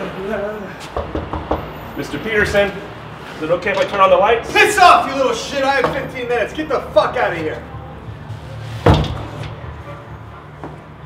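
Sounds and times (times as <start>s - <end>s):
door slamming shut: 8.8s - 9.6s.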